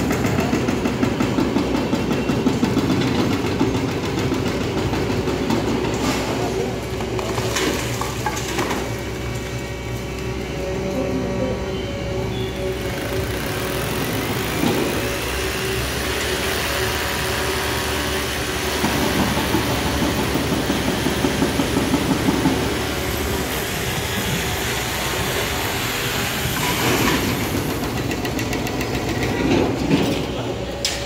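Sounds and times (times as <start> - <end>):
diesel excavator engine running: 0.0 - 31.0.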